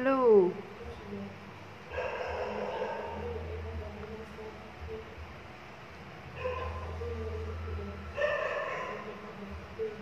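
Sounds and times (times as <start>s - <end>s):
low steady hum: 0.0s - 10.0s
animal calls: 1.9s - 3.4s.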